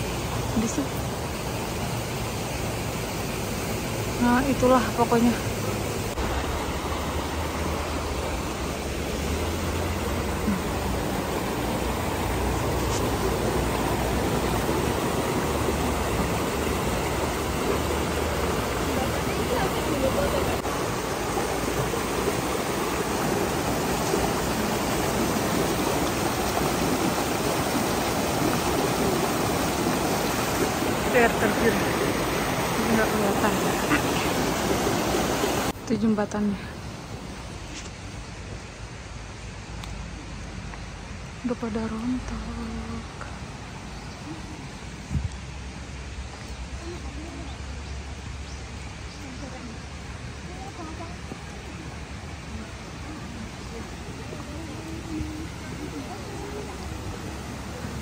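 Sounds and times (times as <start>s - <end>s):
rocky stream rushing: 0.0s - 58.0s
faint voices: 49.0s - 58.0s.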